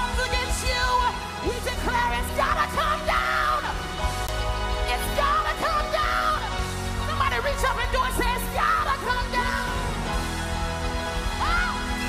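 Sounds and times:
lead voice singing: 0.0 - 4.0, 4.8 - 10.2
bass: 0.0 - 12.0.

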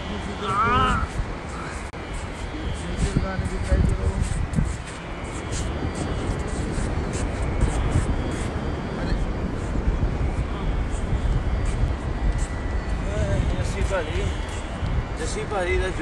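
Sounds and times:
hissy wind gusts: 0.0 - 16.0
wind: 0.0 - 16.0.

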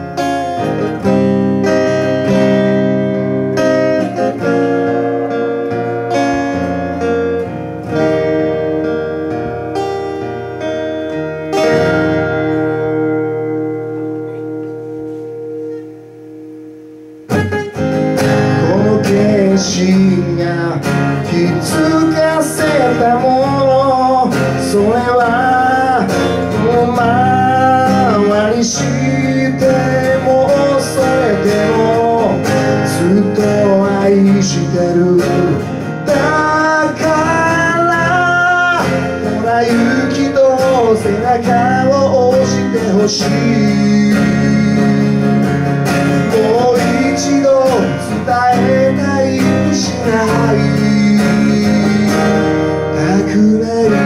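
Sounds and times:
acoustic guitar chord ringing: 0.0 - 54.0
man singing: 18.2 - 54.0.

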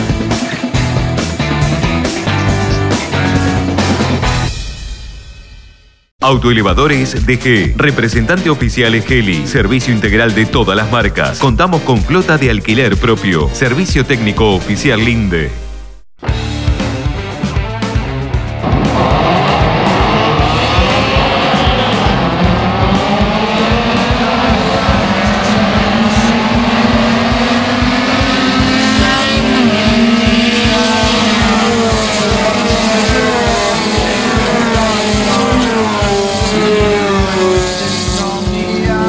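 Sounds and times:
race cars accelerating: 0.0 - 4.2, 16.7 - 39.0
music with steady beat: 0.0 - 5.8, 6.6 - 39.0.

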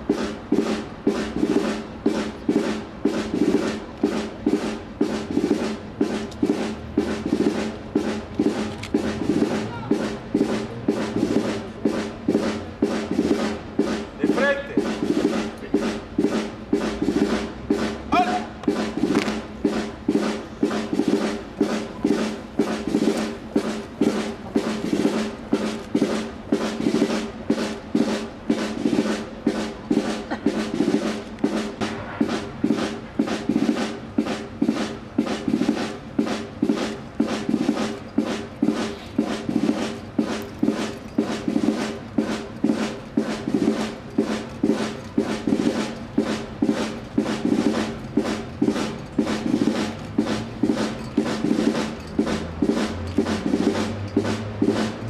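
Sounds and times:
military march: 0.0 - 55.0
steady drum beat: 0.0 - 55.0.

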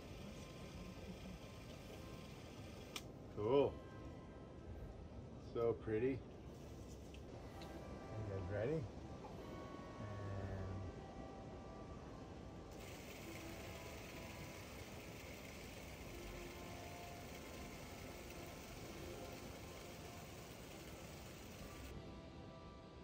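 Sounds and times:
film projector whirring: 0.0 - 3.1, 12.7 - 22.0.

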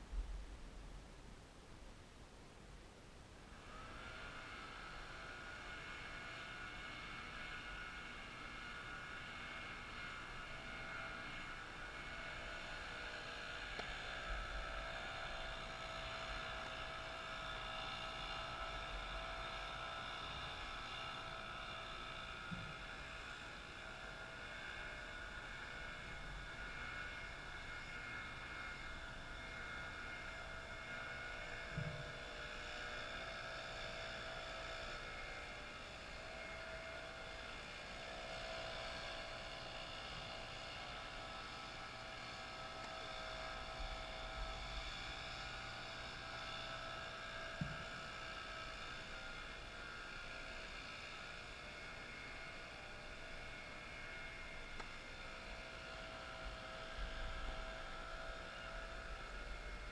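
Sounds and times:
whirring hum: 0.0 - 59.9.

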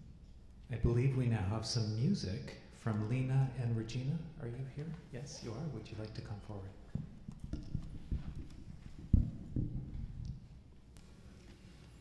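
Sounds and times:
microphone handling thumps: 6.9 - 10.3.

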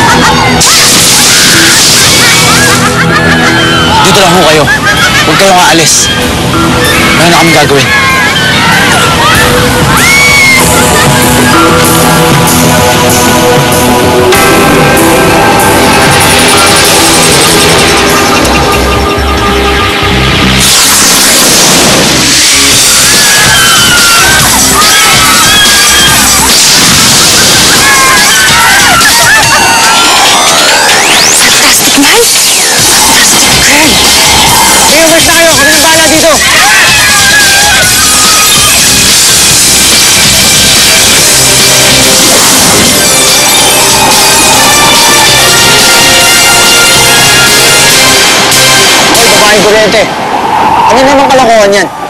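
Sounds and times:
background music with low tones: 0.0 - 50.2
fight sound effects: 20.4 - 50.2.

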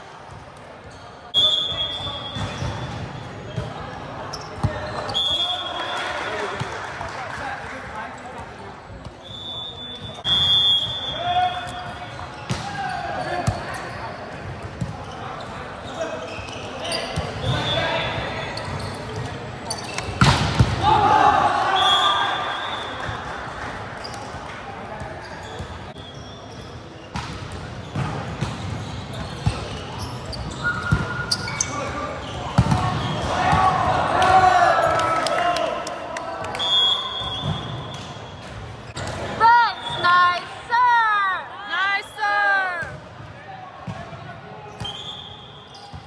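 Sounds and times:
volleyball smacks: 20.0 - 20.8
players shouting: 20.6 - 23.1, 32.2 - 36.0, 39.2 - 43.6.

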